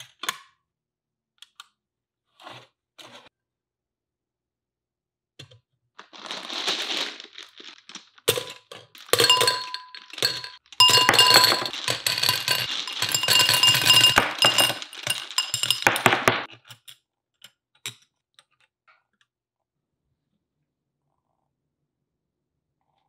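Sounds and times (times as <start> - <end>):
gumballs clattering into glass globe: 6.0 - 16.5.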